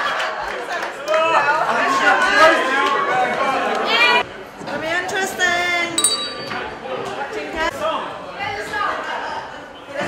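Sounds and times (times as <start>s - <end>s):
handbell ding: 6.0s - 6.7s.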